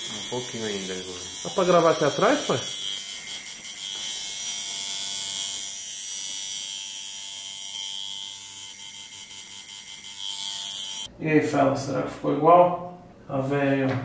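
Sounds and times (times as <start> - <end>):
tattoo machine buzzing: 0.0 - 11.1.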